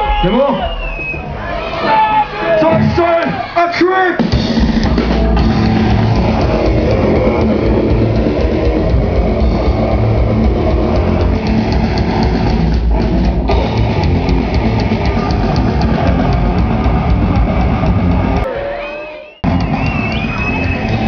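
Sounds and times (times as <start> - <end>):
distorted guitars: 0.0 - 18.6, 19.4 - 21.0
fast drums with cymbal hits: 2.6 - 18.5, 19.4 - 21.0
bass guitar: 4.2 - 18.6, 19.4 - 21.0.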